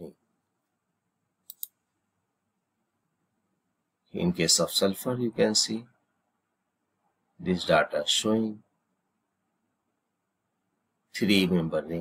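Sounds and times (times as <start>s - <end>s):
computer mouse clicks: 1.4s - 1.8s.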